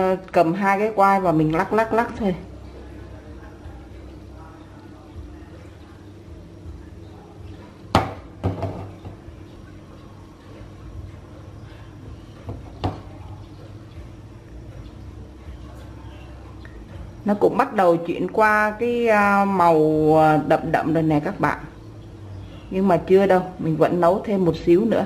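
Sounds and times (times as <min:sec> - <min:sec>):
wok knocking against burner grate: 0:07.9 - 0:09.2.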